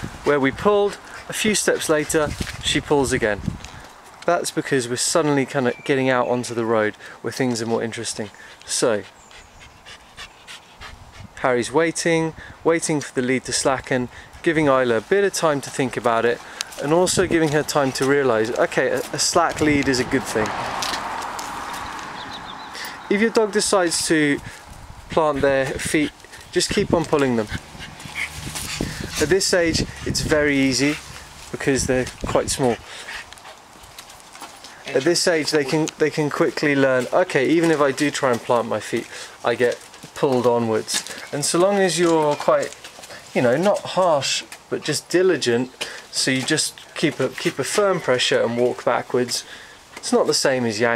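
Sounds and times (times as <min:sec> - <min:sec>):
footsteps on brick paving: 0:00.8 - 0:04.3, 0:14.3 - 0:23.6, 0:24.2 - 0:45.0, 0:45.7 - 0:47.9
puppy panting: 0:08.2 - 0:11.4, 0:25.3 - 0:30.1, 0:32.6 - 0:33.6.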